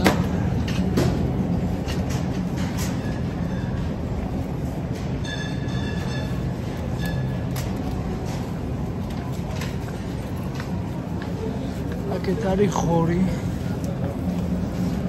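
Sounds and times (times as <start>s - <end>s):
shopping cart wheels rattling: 0.0s - 10.9s.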